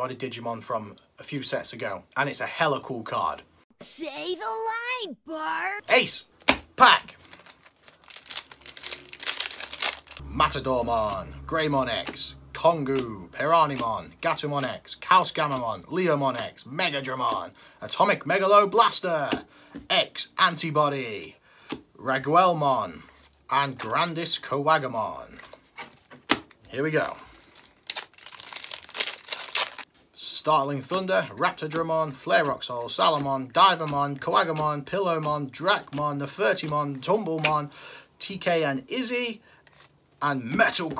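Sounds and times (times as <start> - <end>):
foil pack tearing and crinkling: 7.2 - 10.2, 27.4 - 29.9.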